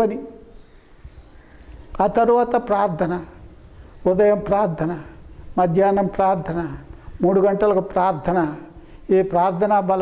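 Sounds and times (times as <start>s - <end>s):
man speaking into a microphone: 0.0s - 0.5s, 1.9s - 10.0s.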